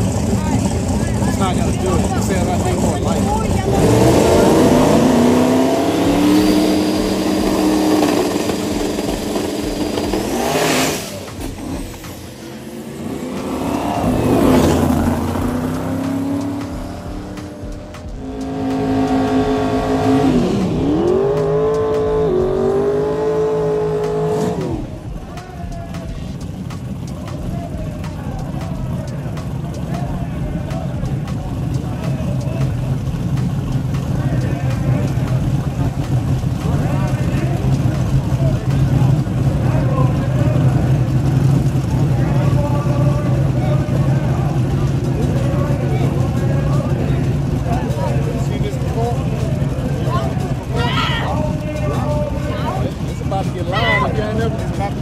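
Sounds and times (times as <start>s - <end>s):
race car engines revving: 0.0s - 55.0s.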